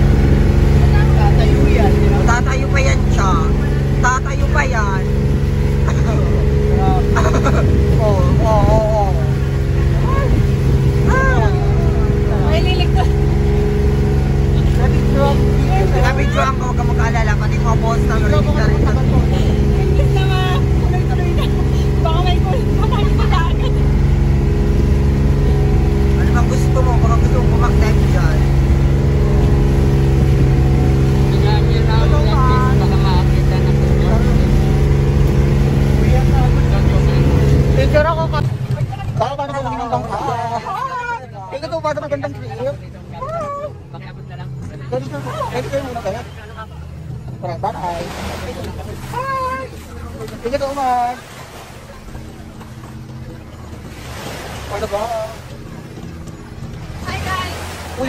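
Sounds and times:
engine running steadily: 0.0 - 58.0
people talking: 0.6 - 24.1, 25.3 - 54.0, 56.9 - 58.0.

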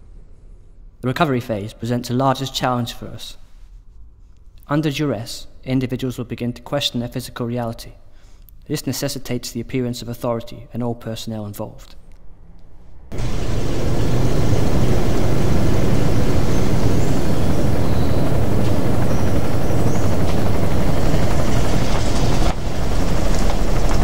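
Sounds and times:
helicopter rotor and engine: 13.1 - 24.0.

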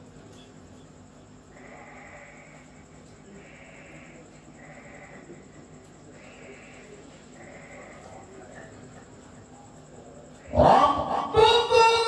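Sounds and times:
faint indistinct hall sounds: 0.0 - 12.0.

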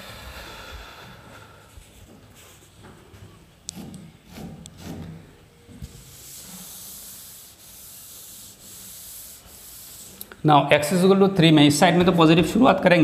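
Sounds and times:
duster rubbing on chalkboard: 1.8 - 10.3.

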